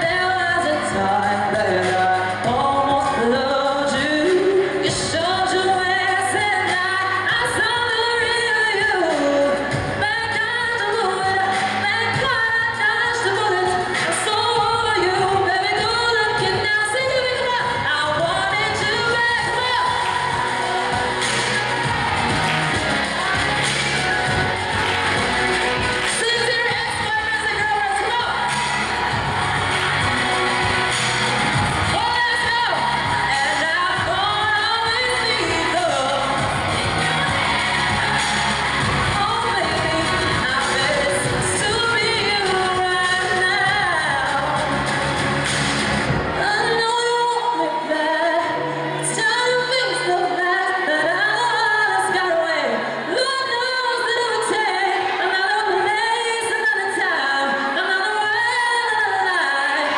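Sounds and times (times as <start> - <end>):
backing music: 0.0 - 51.6
person singing into microphone: 0.0 - 59.9.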